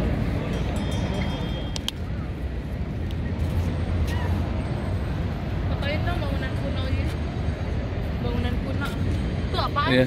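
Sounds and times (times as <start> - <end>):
low city rumble: 0.0 - 10.0.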